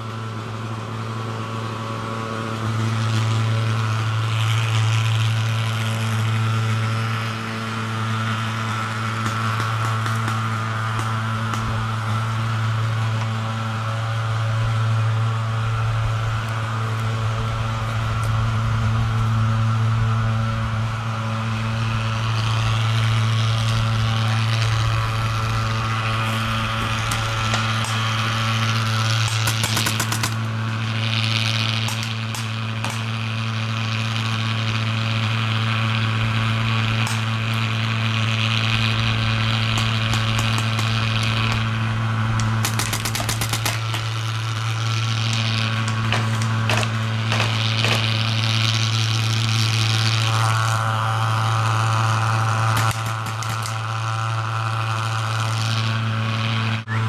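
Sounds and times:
low mechanical hum: 0.0 - 57.0
paintball marker firing pops: 8.6 - 11.9, 29.2 - 30.5, 31.8 - 33.2, 39.7 - 41.7, 42.4 - 44.4, 45.2 - 48.2, 52.7 - 53.9.

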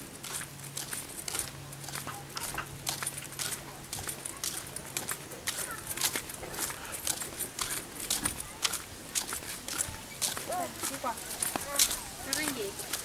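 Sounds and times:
faint voices: 0.0 - 13.0
footsteps on gritty pavement: 0.0 - 13.0.

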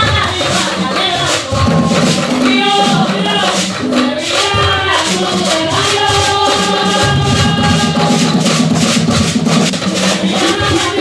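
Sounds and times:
conga drums: 0.0 - 11.0.

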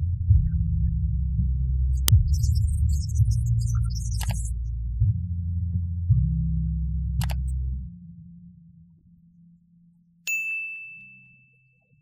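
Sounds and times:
song's low notes: 0.0 - 8.0
bright bell ding: 10.3 - 12.0.

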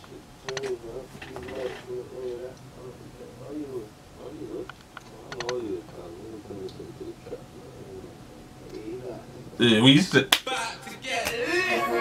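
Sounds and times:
pigeon cooing: 0.0 - 8.4.

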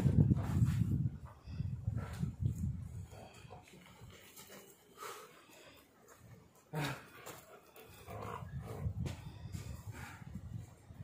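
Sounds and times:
dog play growling: 6.8 - 9.0.

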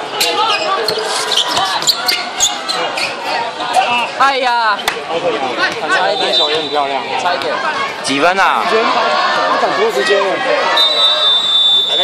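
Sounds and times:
chatter of players: 0.0 - 12.0.

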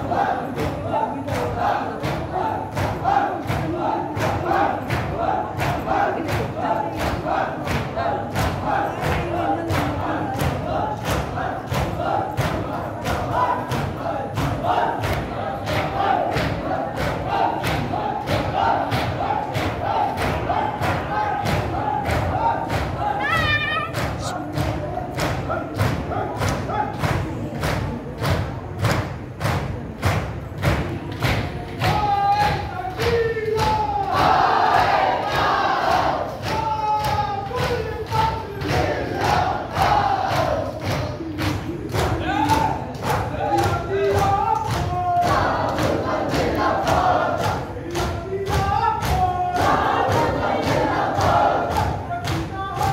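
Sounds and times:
crowd of men chanting: 0.0 - 27.0, 31.8 - 52.9.

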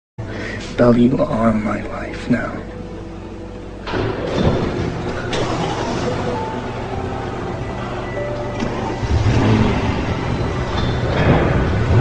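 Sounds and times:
soft background music: 0.2 - 12.0
car engine rumble: 6.2 - 12.0.

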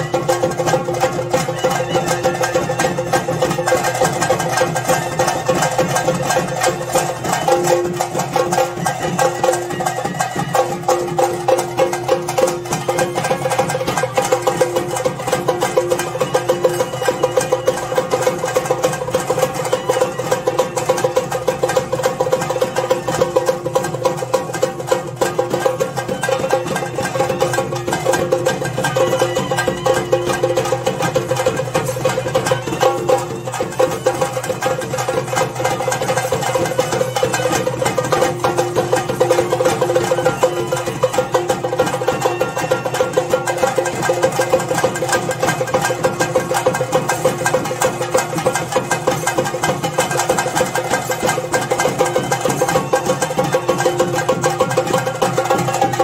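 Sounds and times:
drums in fast rolls: 0.0 - 56.0.

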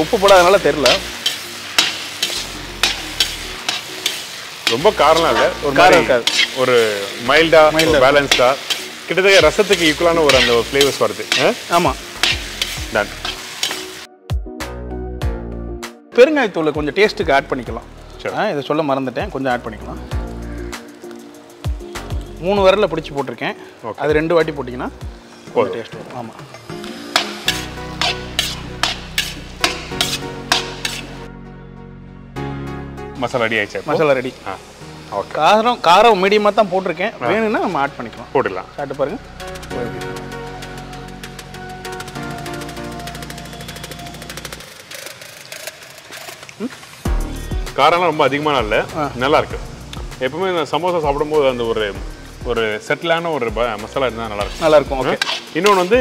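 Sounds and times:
filling sizzling in pan: 0.0 - 14.1, 16.2 - 31.4, 33.1 - 56.0
background music: 0.0 - 56.0
spatula clacking against pan: 0.4 - 4.9, 6.2 - 6.6, 9.7 - 13.8, 27.1 - 31.2, 54.5 - 56.0.

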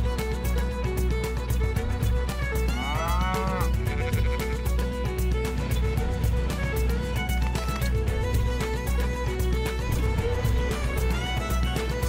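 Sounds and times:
theme music with steady beat: 0.0 - 12.0
cow mooing: 2.8 - 4.1.

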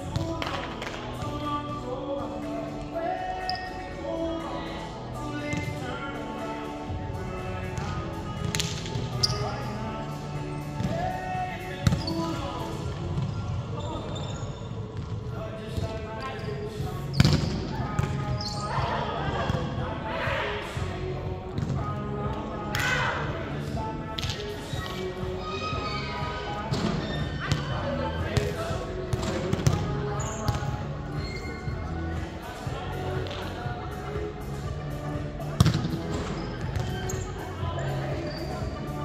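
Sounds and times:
background music: 0.0 - 39.0
voices in a gym: 0.0 - 39.0.

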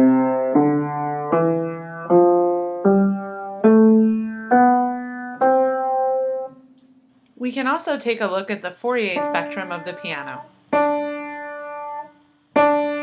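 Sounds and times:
piano playing ascending scale: 0.0 - 6.6, 9.2 - 13.0.

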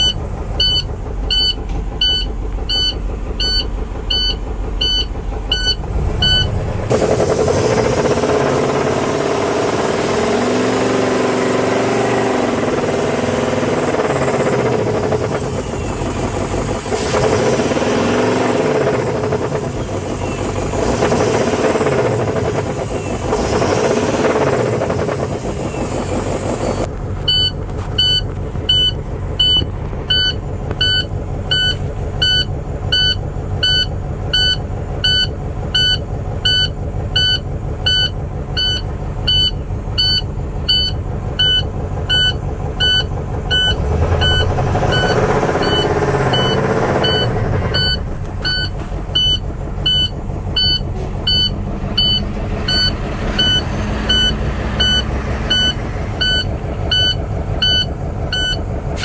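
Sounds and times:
warning buzzer beeping: 0.0 - 6.5
diesel engine idling and revving: 0.0 - 59.0.

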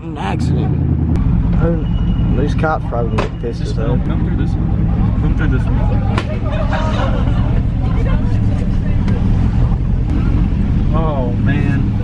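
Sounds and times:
truck engine rumbling: 0.0 - 12.0.

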